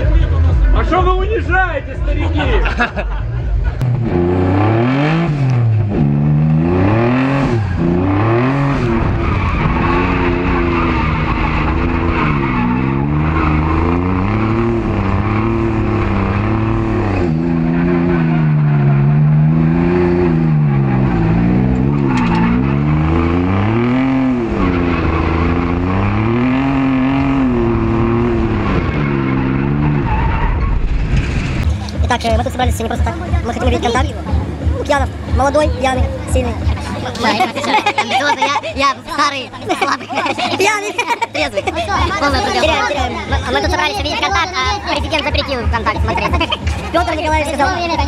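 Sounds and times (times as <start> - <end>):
car engine revving: 0.0 - 48.0
tyres skidding: 3.1 - 48.0.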